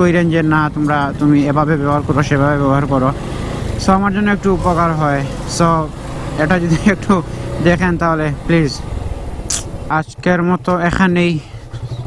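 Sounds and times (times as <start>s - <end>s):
motorcycle engine rumble: 0.0s - 12.0s.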